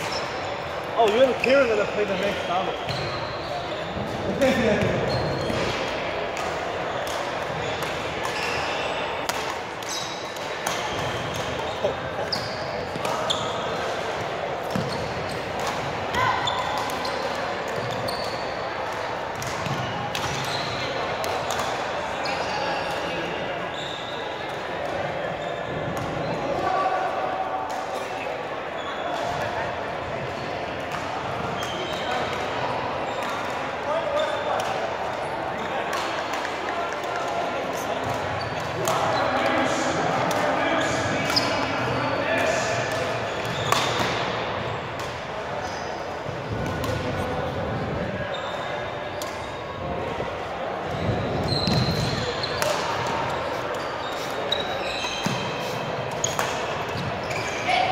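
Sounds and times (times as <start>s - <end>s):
people chattering: 0.0s - 57.9s
rackets striking shuttlecock: 42.8s - 45.3s, 56.1s - 57.1s.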